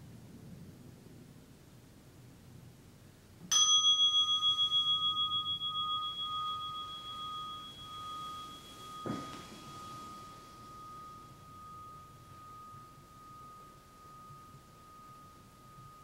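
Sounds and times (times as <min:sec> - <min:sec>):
meditation bell ringing: 0:03.5 - 0:16.0
soft thump: 0:08.9 - 0:10.2.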